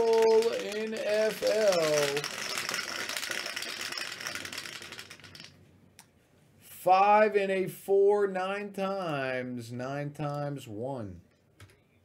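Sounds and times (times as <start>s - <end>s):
dice rattling in plastic dome: 0.0s - 5.6s.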